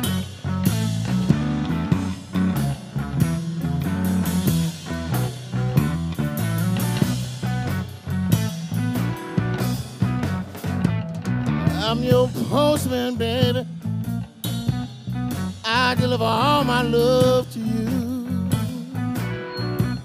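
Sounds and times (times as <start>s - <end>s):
bass and drums: 0.0s - 20.0s.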